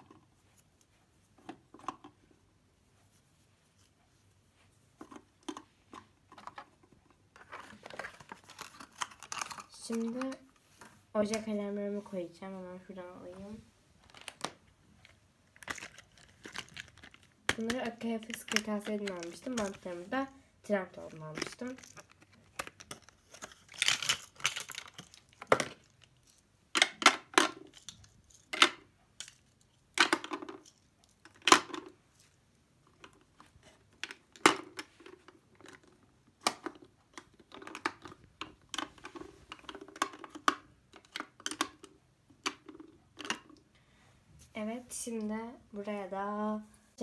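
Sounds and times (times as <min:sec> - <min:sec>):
plastic pack crinkling: 0:07.4 - 0:10.4, 0:14.0 - 0:20.2, 0:21.0 - 0:26.4.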